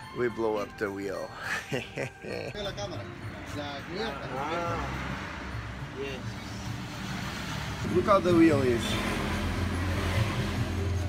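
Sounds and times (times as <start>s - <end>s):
passing motor traffic: 2.1s - 11.0s.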